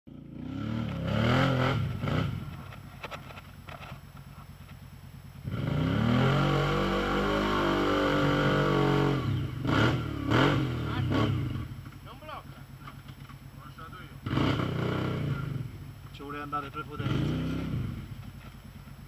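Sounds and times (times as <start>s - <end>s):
quad engine revving: 0.1s - 2.7s, 5.4s - 11.8s, 14.2s - 15.8s, 16.5s - 18.3s.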